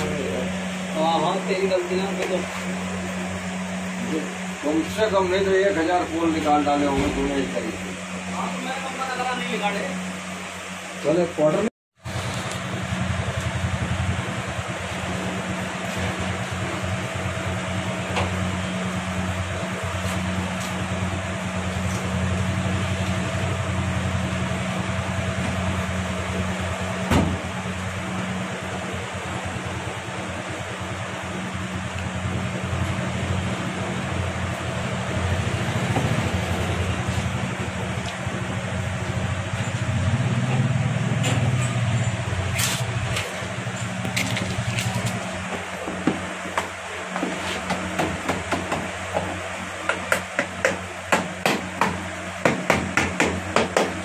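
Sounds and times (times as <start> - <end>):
machinery hum and whir: 0.0 - 54.0.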